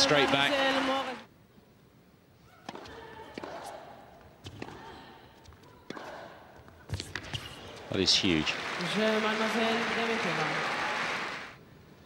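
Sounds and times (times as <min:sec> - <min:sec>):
tennis ball bouncing and struck: 0:02.6 - 0:03.7.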